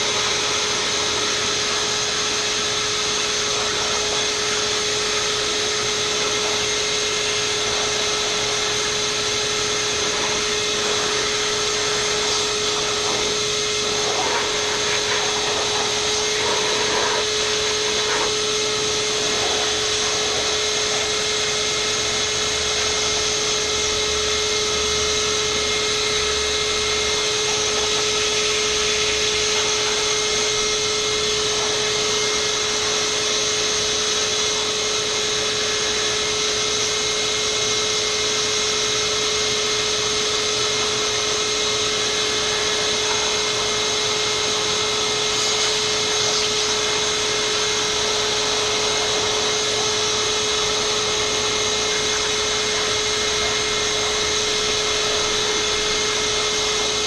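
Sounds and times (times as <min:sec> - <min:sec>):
hose blowing air: 0:00.0 - 0:57.0
shop vacuum motor whining: 0:00.0 - 0:57.0.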